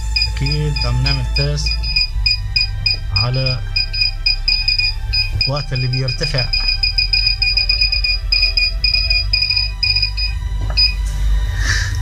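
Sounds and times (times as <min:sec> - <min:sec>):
high electronic beeping: 0:00.0 - 0:11.0
low hum: 0:00.0 - 0:12.0.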